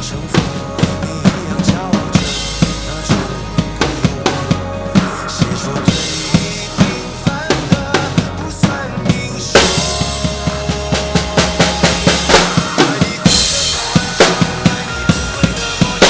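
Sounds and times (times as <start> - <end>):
acoustic drum kit: 0.0 - 16.0
recorded instrumental track: 0.0 - 16.0.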